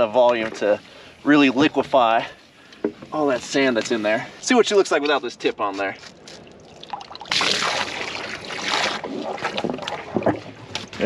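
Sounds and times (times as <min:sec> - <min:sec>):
water splashing and sloshing: 0:00.0 - 0:11.0
water gushing from pipe: 0:06.8 - 0:10.6.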